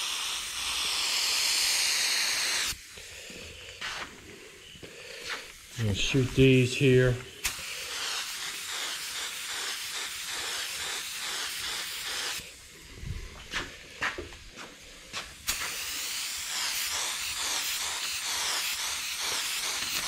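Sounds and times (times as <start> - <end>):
paint spray gun hissing: 0.0 - 12.9, 15.0 - 20.0.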